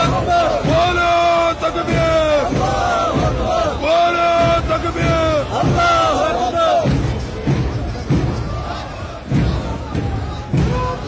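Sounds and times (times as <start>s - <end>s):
crowd chanting slogans: 0.0s - 11.0s.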